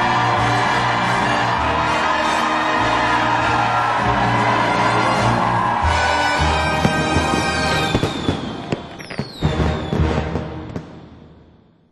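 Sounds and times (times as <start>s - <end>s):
firework cracks: 6.7s - 11.4s
falling firework whistles: 6.8s - 11.4s
firework booms: 6.8s - 11.6s.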